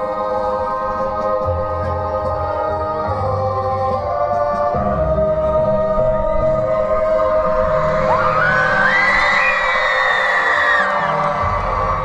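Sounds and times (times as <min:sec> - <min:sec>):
droning music over a pa: 0:00.0 - 0:12.0
crowd cheering: 0:08.0 - 0:12.0.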